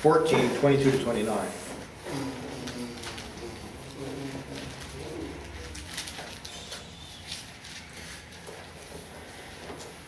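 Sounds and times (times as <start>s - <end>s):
book pages rustling: 2.6s - 10.0s.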